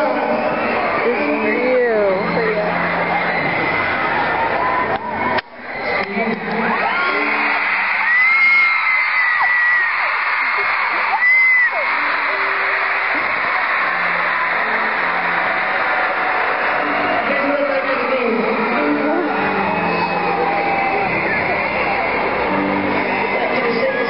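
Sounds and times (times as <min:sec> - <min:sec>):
crowd screaming: 0:00.0 - 0:24.0
shrill drawn-out screams: 0:06.8 - 0:17.8, 0:18.4 - 0:24.0.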